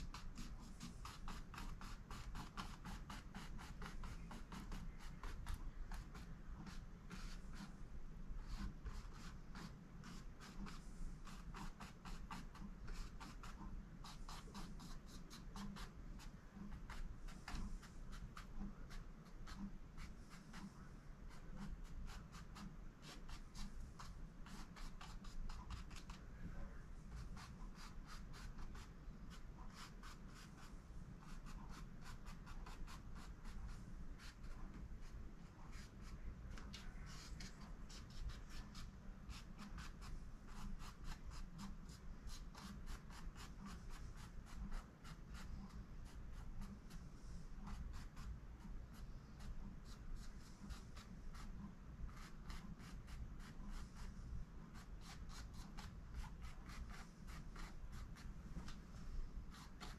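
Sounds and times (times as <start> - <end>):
low steady hum: 0.0 - 59.9
paintbrush strokes on canvas: 0.0 - 59.9.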